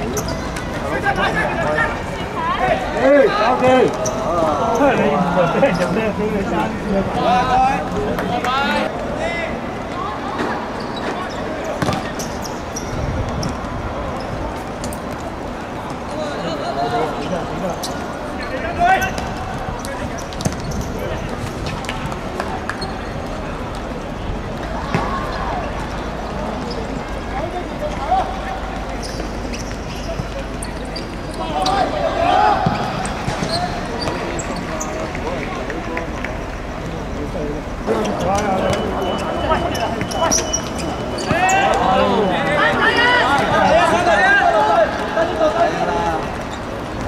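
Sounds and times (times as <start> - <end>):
players shouting: 0.0 - 12.9, 15.3 - 47.0
football being kicked: 11.8 - 12.1.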